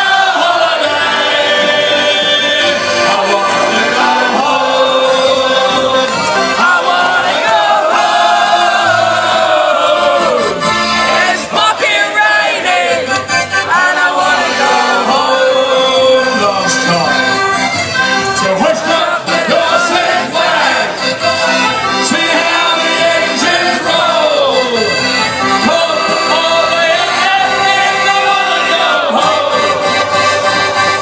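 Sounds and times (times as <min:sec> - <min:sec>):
person singing: 0:00.0 - 0:07.1
accordion: 0:00.0 - 0:31.0
live band music: 0:00.0 - 0:31.0.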